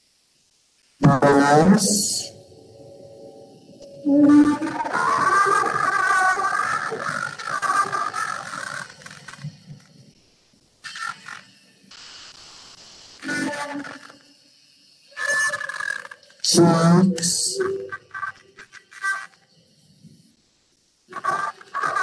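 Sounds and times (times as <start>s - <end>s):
person speaking softly: 1.0s - 2.4s
soft music with wavering tone: 2.3s - 4.8s.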